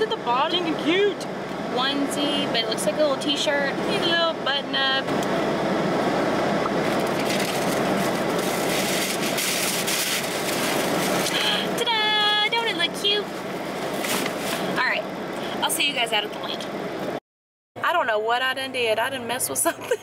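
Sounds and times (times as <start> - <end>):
car air conditioning blowing: 0.0 - 17.2
tissue paper crinkling: 7.2 - 11.3.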